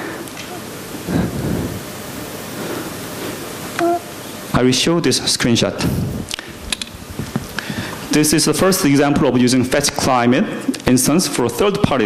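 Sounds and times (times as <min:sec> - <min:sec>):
sound system hiss: 0:00.0 - 0:12.0.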